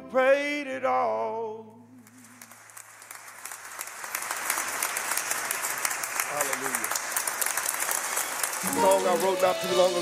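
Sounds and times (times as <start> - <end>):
studio audience applauding: 2.1 - 10.0
held musical notes: 8.6 - 10.0.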